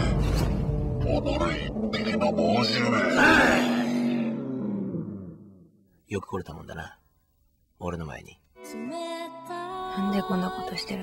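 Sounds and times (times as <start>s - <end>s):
deep drawn-out roar: 1.0s - 5.8s.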